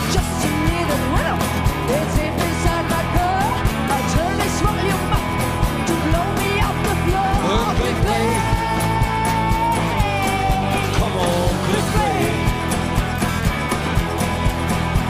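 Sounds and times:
rock band playing: 0.0 - 15.0.

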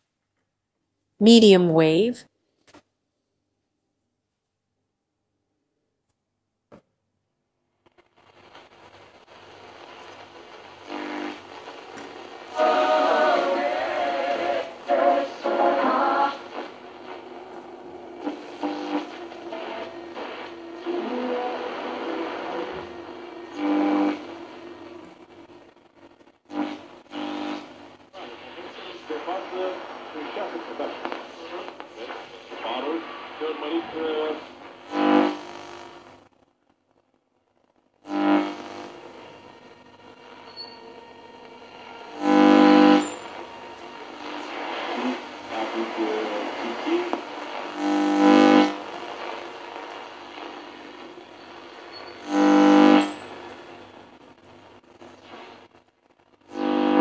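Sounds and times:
radio static hiss: 7.8 - 57.0
broadcast voices from radio: 18.2 - 22.9, 28.1 - 35.4, 43.3 - 51.8.

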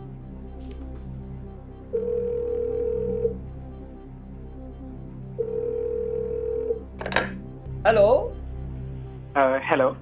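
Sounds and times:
low background music: 0.0 - 10.0
telephone ringback tone: 2.0 - 3.4, 5.4 - 7.3.

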